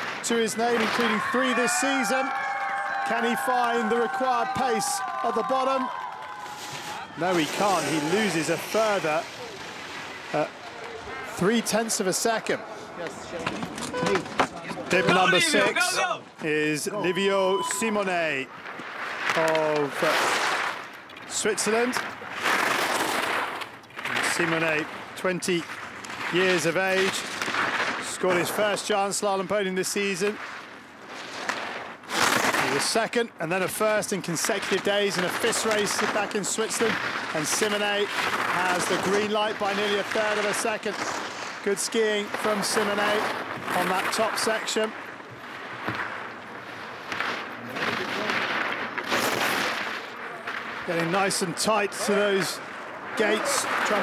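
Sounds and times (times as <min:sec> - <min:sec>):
skis carving snow hiss: 0:06.4 - 0:10.7, 0:18.1 - 0:44.9, 0:45.6 - 0:50.2, 0:50.8 - 0:54.0.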